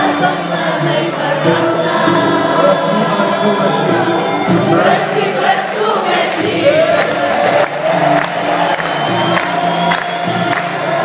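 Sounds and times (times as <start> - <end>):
voices singing together: 0.0 - 11.0.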